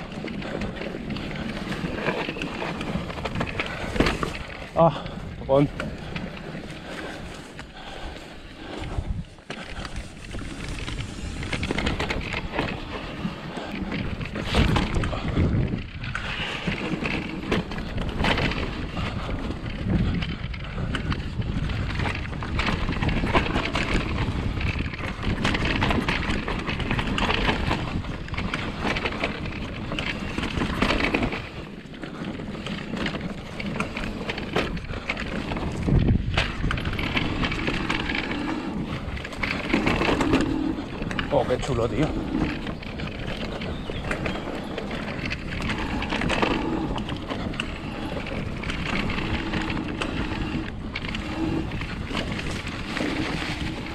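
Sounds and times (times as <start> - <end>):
bike knocking and rattling: 0.0 - 53.9
tyre and wind noise rushing: 0.0 - 53.9.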